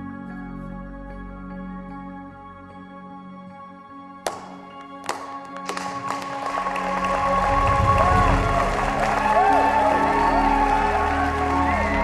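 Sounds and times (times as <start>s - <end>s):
soft background music: 0.0s - 12.0s
people clapping: 4.3s - 12.0s.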